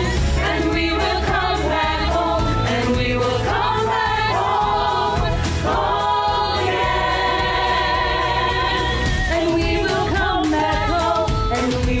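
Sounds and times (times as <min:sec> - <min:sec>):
choir singing: 0:00.0 - 0:11.3
backing track music: 0:00.0 - 0:12.0.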